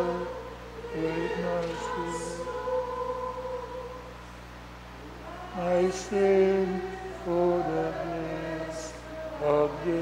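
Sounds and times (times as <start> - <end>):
congregation singing a hymn: 0.0 - 4.3, 4.9 - 10.0
low steady hum: 0.0 - 10.0.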